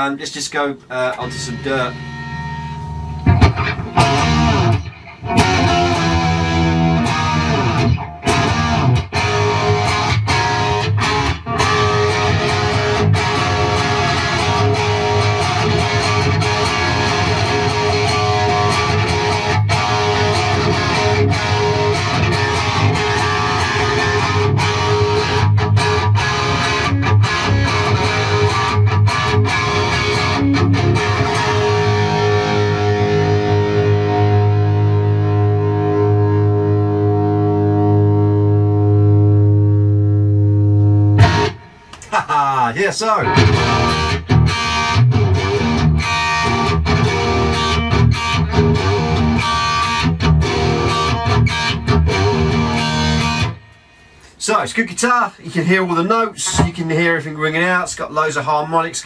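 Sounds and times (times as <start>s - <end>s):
distorted electric guitar: 0.0s - 54.4s.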